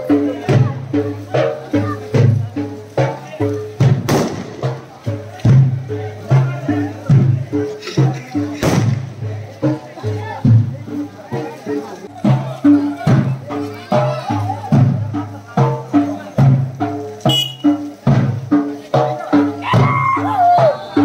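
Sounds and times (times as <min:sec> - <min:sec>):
crowd voices: 0:00.0 - 0:21.0
hand-beaten drums: 0:00.0 - 0:21.0.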